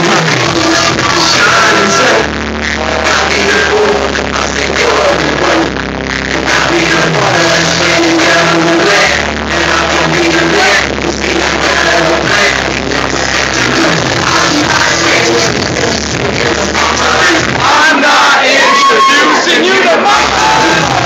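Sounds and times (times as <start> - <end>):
crowd voices: 0.0 - 5.7, 6.3 - 21.0
hip-hop beat with heavy bass: 0.0 - 21.0
rapper's voice: 0.0 - 21.0.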